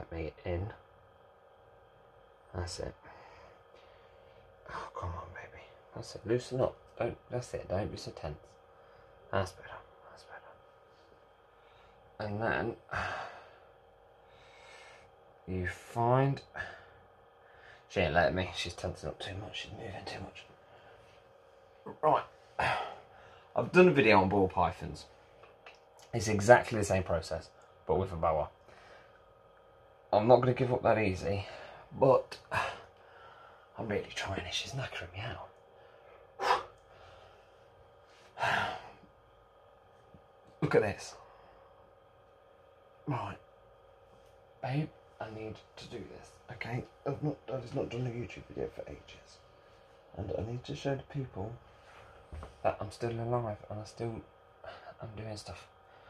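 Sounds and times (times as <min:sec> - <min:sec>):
faint breath: 0:03.0 - 0:04.6, 0:12.9 - 0:15.2, 0:32.5 - 0:33.8, 0:35.8 - 0:39.1
man sighing heavily: 0:38.4 - 0:39.1.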